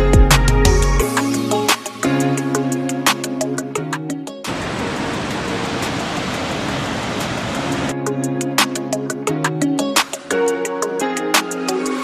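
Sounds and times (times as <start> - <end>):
guitar music: 0.0 - 4.9, 7.8 - 12.0
water rushing over a weir: 4.4 - 8.0.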